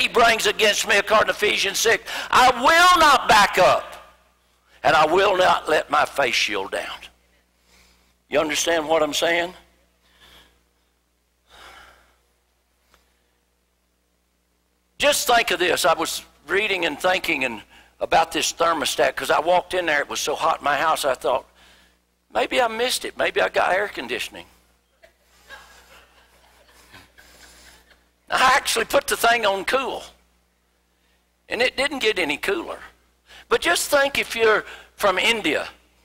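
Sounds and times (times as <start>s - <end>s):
low steady hum: 0.0s - 36.0s.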